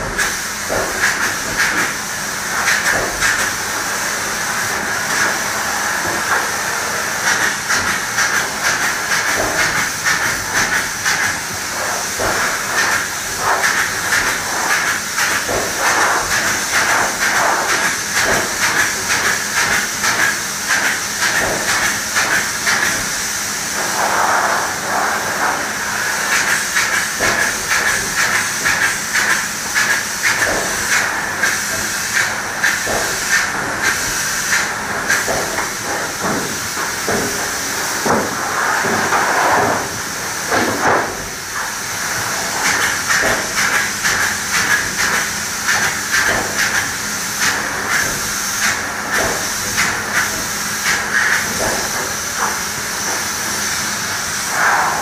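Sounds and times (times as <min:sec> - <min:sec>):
spray gun hissing in pulses: 0:00.0 - 0:55.0.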